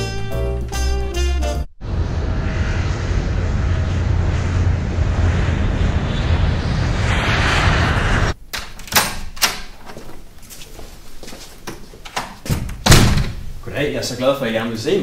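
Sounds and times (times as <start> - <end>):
jet engine rumble: 1.8 - 8.5.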